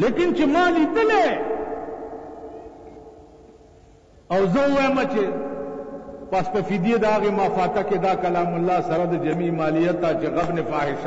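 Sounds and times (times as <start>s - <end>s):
man speaking with echo: 0.0s - 2.4s, 4.3s - 11.0s
faint steady hum: 0.0s - 11.0s.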